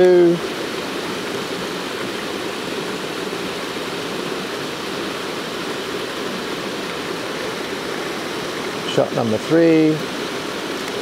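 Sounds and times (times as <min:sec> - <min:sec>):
small waterfall rushing: 0:00.0 - 0:11.0.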